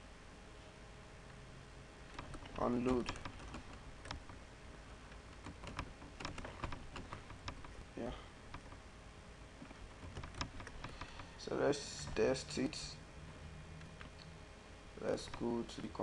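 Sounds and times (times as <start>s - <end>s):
computer keyboard typing: 2.1s - 4.4s, 5.1s - 7.8s, 8.5s - 8.8s, 9.7s - 11.4s.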